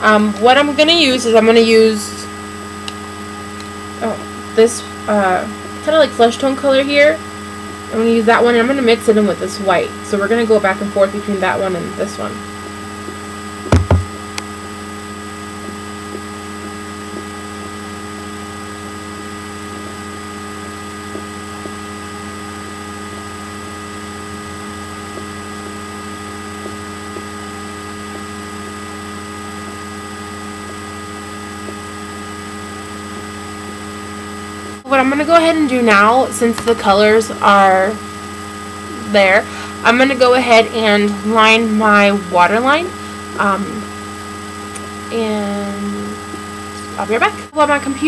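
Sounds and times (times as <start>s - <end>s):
electrical mains hum: 0.0s - 48.0s
loud thump: 13.7s - 14.2s.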